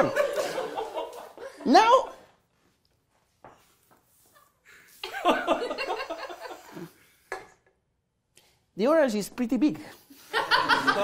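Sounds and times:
laughter: 0:00.0 - 0:01.7, 0:04.3 - 0:06.9, 0:10.1 - 0:11.0.

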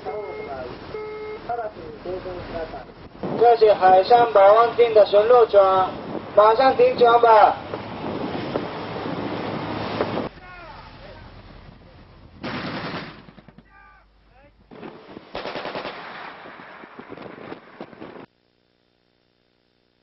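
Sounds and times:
rapid automatic gunfire: 0:15.3 - 0:16.2.

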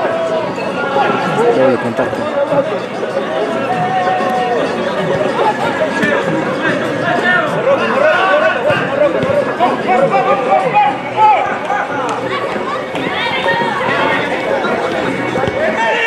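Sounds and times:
many voices talking and calling: 0:00.0 - 0:16.0.

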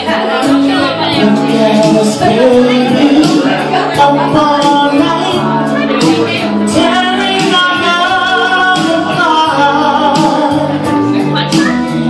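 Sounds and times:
karaoke backing track: 0:00.0 - 0:12.0
man singing into a microphone: 0:00.0 - 0:12.0.

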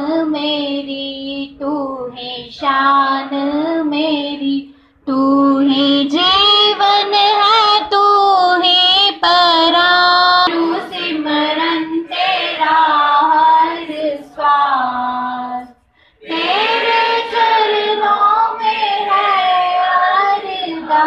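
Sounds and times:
girl singing into a microphone: 0:00.0 - 0:12.1, 0:12.9 - 0:15.8
girls singing devotional song: 0:00.0 - 0:21.0.

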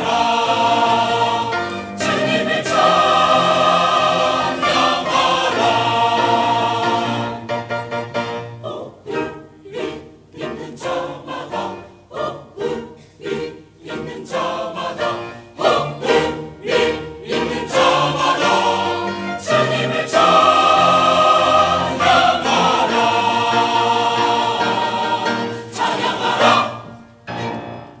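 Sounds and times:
choir singing: 0:00.0 - 0:28.0
string ensemble: 0:00.0 - 0:28.0.

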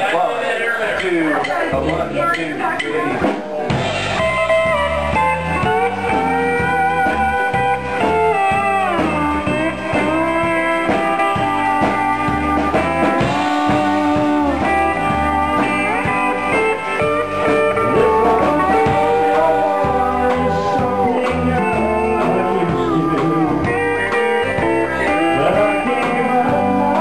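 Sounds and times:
country band playing: 0:00.0 - 0:27.0
pedal steel guitar sliding notes: 0:03.8 - 0:27.0.

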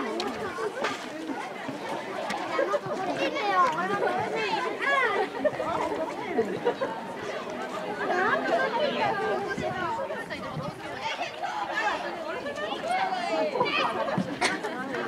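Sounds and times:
children shouting: 0:00.0 - 0:15.0.

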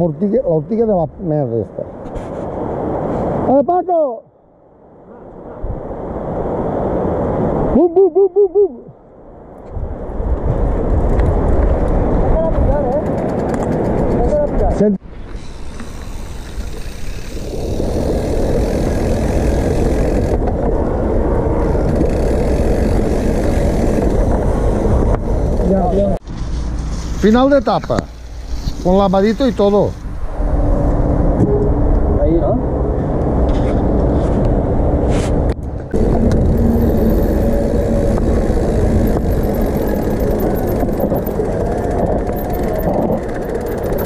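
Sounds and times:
wind rumbling on microphone: 0:04.8 - 0:44.0
bike rolling over gravel trail: 0:15.2 - 0:29.8, 0:35.9 - 0:44.0.

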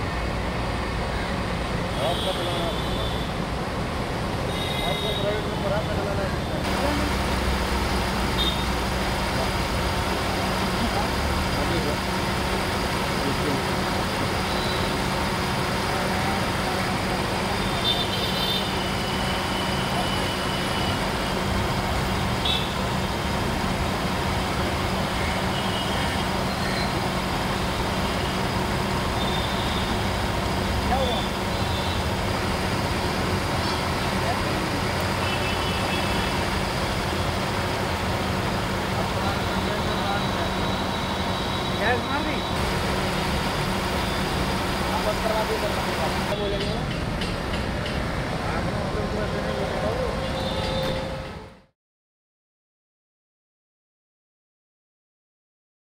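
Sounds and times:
car engine idling: 0:42.6 - 0:46.3.

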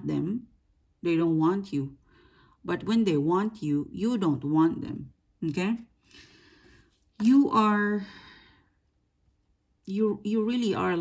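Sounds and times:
person talking: 0:00.0 - 0:02.0, 0:02.7 - 0:05.9, 0:07.2 - 0:08.2, 0:09.9 - 0:11.0.

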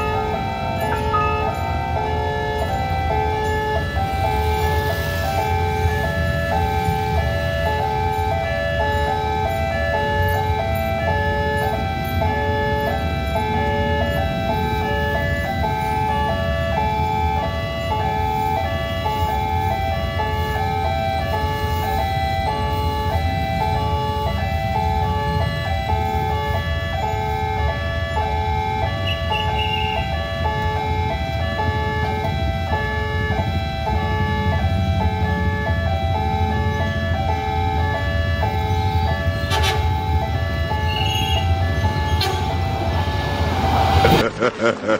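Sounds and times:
level crossing two-tone alarm: 0:00.0 - 0:44.2
traffic idling rumble: 0:00.0 - 0:44.9.

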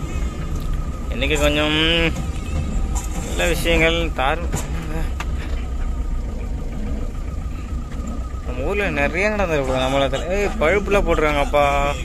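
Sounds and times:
engine and road rumble: 0:00.0 - 0:12.0
faint steady high tone: 0:00.0 - 0:12.0.

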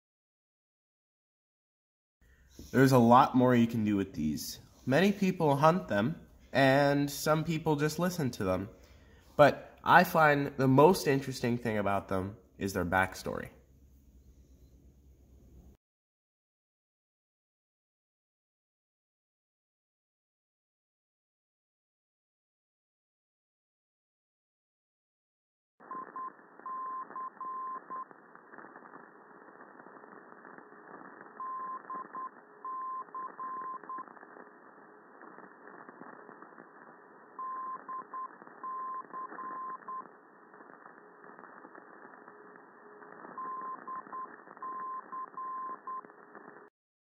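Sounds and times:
morse code beeps: 0:25.9 - 0:28.1, 0:31.4 - 0:34.1, 0:37.4 - 0:40.1, 0:43.4 - 0:46.1
radio static hiss: 0:25.9 - 0:46.7.

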